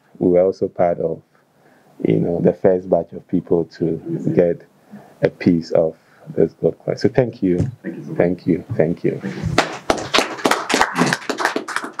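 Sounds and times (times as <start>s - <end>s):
small group applauding: 9.4s - 12.0s.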